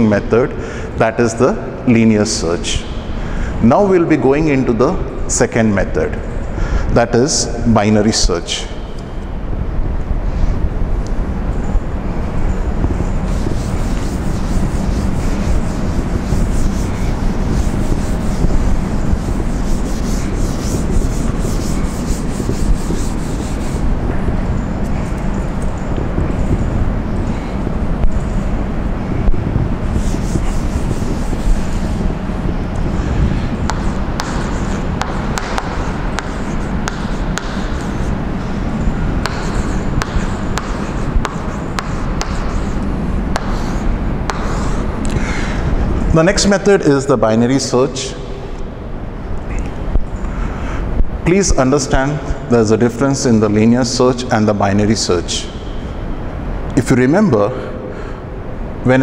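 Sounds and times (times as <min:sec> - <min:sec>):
duster rubbing on chalkboard: 0:12.9 - 0:26.7, 0:29.8 - 0:45.0
chalk writing on board: 0:13.2 - 0:23.9, 0:29.9 - 0:32.1, 0:32.7 - 0:44.9.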